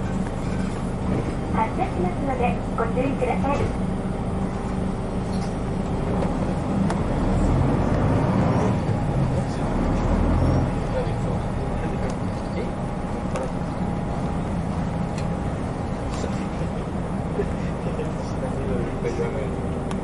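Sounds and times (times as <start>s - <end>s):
bus diesel engine running: 0.0s - 20.0s.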